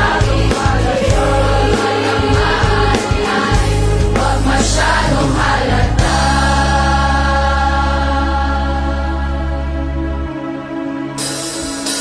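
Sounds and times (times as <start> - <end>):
backing track with beat and bass: 0.0 - 7.3
choir singing: 0.0 - 10.4.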